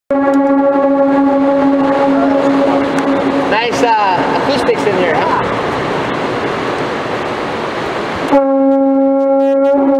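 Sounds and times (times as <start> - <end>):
conch shell horn note echoing: 0.1 - 4.4, 8.3 - 9.9.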